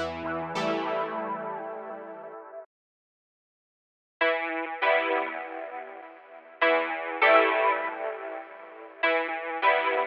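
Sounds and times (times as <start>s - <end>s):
lo-fi keyboard chord: 0.0s - 2.6s.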